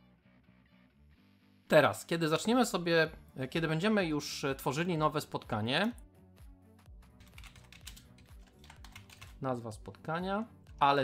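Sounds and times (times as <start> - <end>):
faint background music: 0.0 - 11.0
typing on computer keyboard: 7.2 - 9.4.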